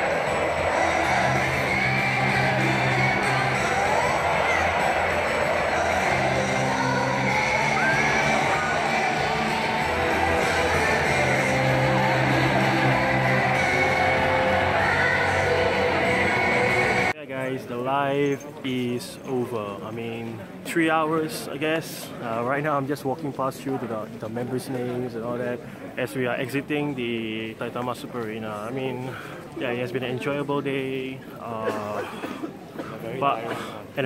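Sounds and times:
band backing: 0:00.0 - 0:17.1
woman singing into microphone: 0:05.5 - 0:17.1.

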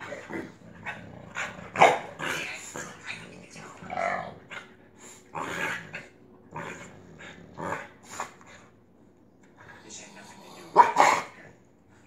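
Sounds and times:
dog barking: 0:01.8 - 0:02.1, 0:10.8 - 0:11.4.

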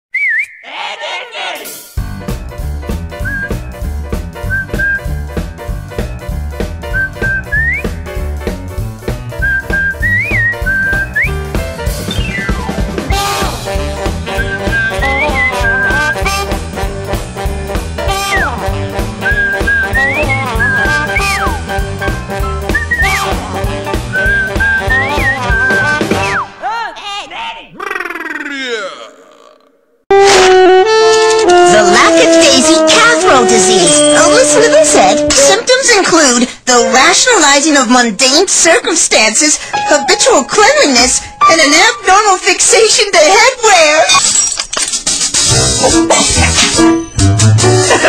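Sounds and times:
whistled melody: 0:00.1 - 0:00.6, 0:03.2 - 0:03.8, 0:04.4 - 0:05.3, 0:06.8 - 0:08.1, 0:09.4 - 0:13.5, 0:14.3 - 0:16.6, 0:17.6 - 0:26.5
jazzy drum kit and bass beat: 0:01.6 - 0:26.4, 0:45.0 - 0:48.0.

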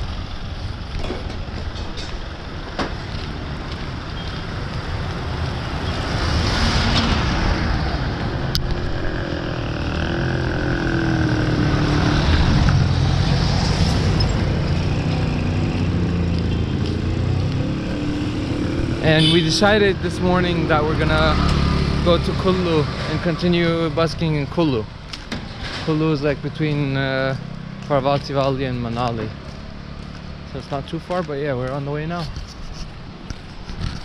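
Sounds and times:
vehicle engines passing: 0:00.0 - 0:34.0.

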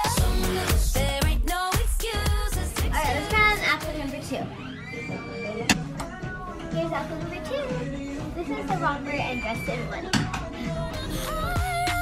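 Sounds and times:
pop music with singing: 0:00.0 - 0:12.0.

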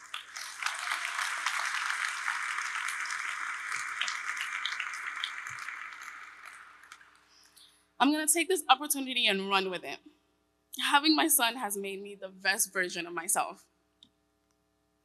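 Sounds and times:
audience applauding: 0:00.0 - 0:07.3.

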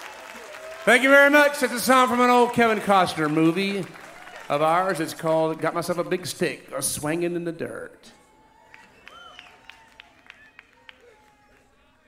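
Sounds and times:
audience calls: 0:00.0 - 0:06.2.

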